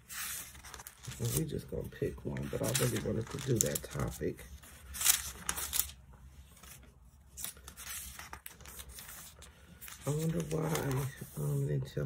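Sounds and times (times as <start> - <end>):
thin paper page rustling: 0.0 - 11.7.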